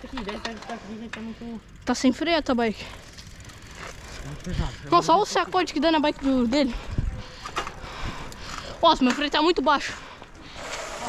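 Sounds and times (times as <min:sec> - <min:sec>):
wind and bicycle tyres hiss: 0:00.8 - 0:11.0.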